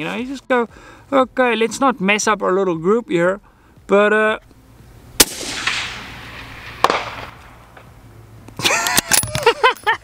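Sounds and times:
rifle shot echo: 0:05.2 - 0:07.9.

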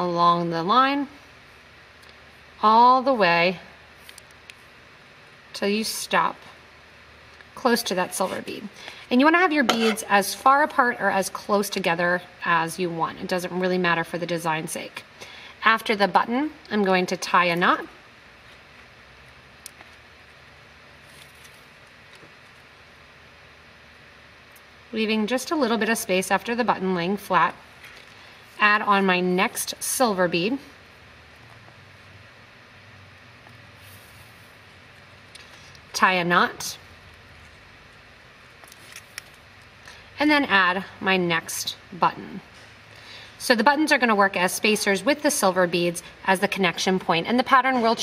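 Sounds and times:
room hiss: 0:00.0 - 0:48.0.

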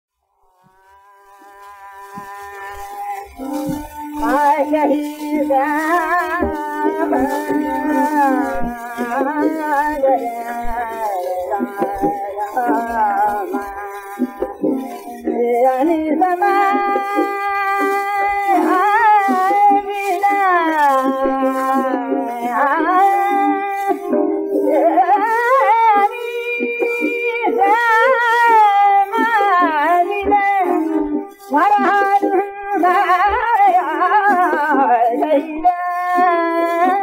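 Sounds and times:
harmonium holding a reedy note: 0:00.5 - 0:37.0.

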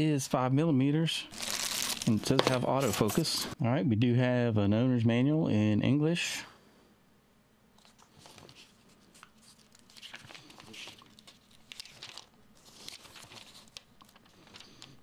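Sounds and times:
paper pages turning: 0:01.3 - 0:03.4, 0:07.8 - 0:15.0.

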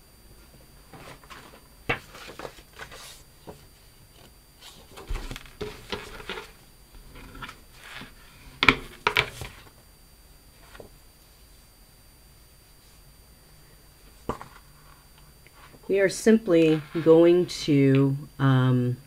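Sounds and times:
paper rustling: 0:00.9 - 0:06.6.

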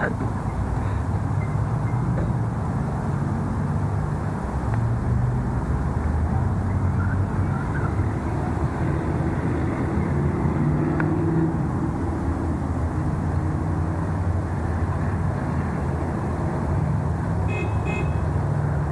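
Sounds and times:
parking lot traffic noise: 0:00.0 - 0:18.9.

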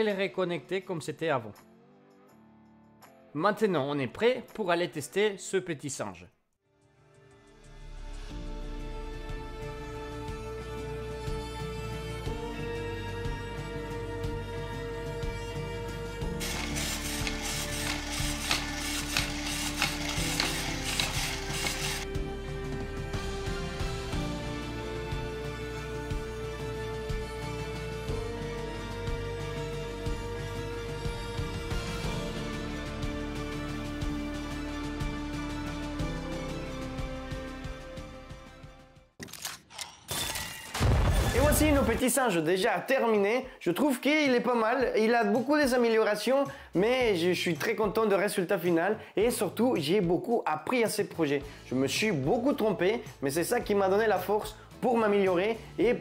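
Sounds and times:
toy motor whirring with clicks: 0:16.4 - 0:22.1.

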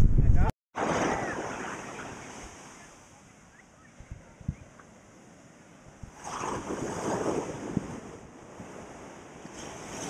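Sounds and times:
waves breaking on beach: 0:00.8 - 0:10.0.

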